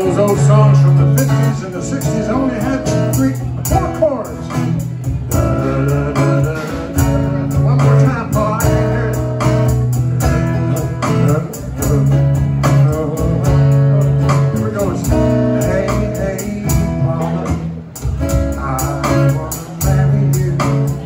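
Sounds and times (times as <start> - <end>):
electric bass: 0.0 - 21.0
strummed acoustic guitar: 0.0 - 21.0.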